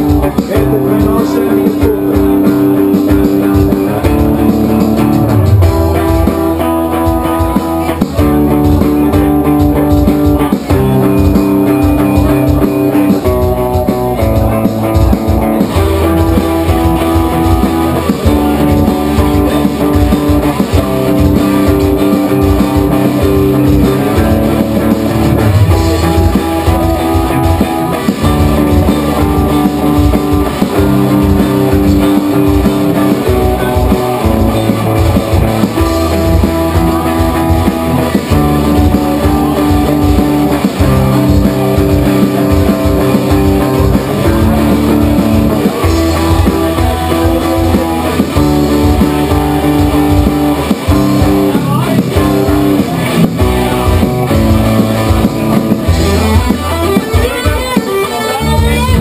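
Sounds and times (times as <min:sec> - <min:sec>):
drum kit: 0:00.0 - 0:59.0
electric bass: 0:00.0 - 0:59.0
electric guitars playing chords: 0:00.0 - 0:59.0.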